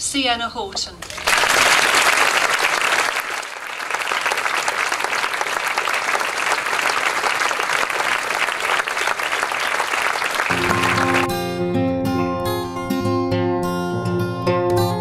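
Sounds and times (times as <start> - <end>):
audience applauding: 1.0 - 11.5.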